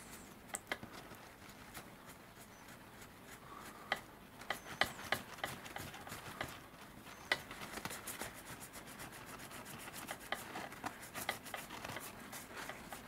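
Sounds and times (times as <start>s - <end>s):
paper towel rustling on figure: 4.7s - 13.0s.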